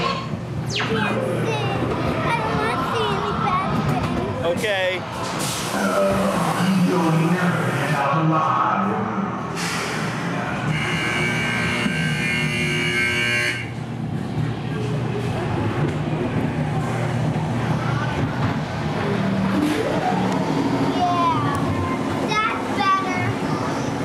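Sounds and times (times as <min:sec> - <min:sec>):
low rumble of ride: 0:00.0 - 0:24.0.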